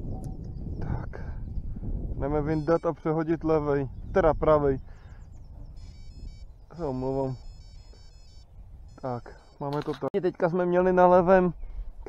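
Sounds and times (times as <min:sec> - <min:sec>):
electronic bite alarm beeping: 0:02.4 - 0:03.2, 0:05.7 - 0:09.8.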